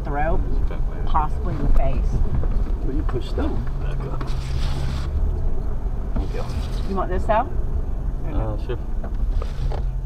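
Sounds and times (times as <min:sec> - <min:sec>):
vehicle engine drone in cabin: 0:00.0 - 0:10.0.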